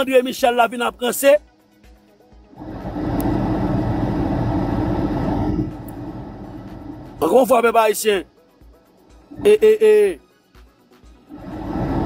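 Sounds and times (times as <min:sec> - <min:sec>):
motor vehicle rumbling: 0:02.6 - 0:07.2, 0:11.3 - 0:12.0.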